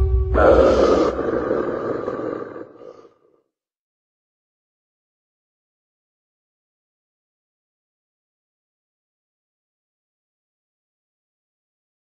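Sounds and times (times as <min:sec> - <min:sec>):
low rumble: 0:00.0 - 0:02.6.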